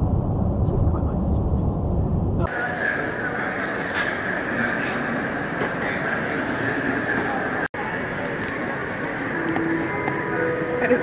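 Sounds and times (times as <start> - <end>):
constant high whine: 0.0 - 11.0
terminal background din: 0.0 - 11.0.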